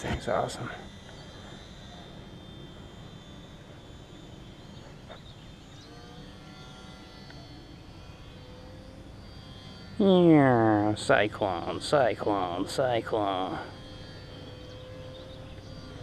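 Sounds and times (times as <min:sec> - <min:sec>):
model plane motor whine: 0:00.0 - 0:16.0.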